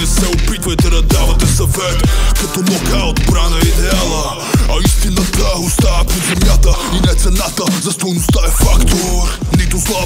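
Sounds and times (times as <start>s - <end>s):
deep bass hits: 0.0s - 7.4s
man rapping over a beat: 0.0s - 10.0s.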